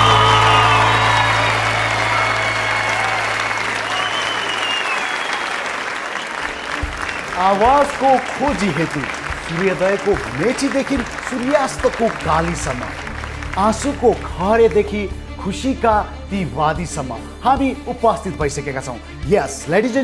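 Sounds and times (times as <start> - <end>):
audience applauding: 0.0 - 15.0
man talking: 7.3 - 20.0.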